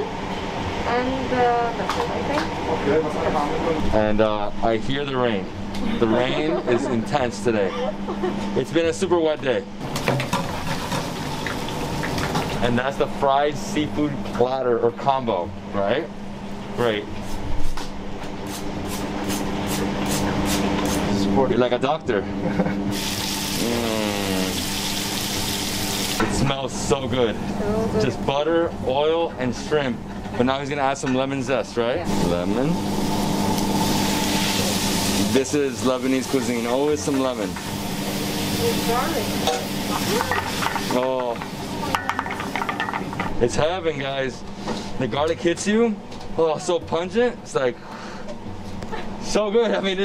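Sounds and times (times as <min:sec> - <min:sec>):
low kitchen hum: 0:00.0 - 0:50.0
shrimp sizzling in a pan: 0:23.0 - 0:26.2, 0:33.0 - 0:36.6, 0:37.3 - 0:41.7.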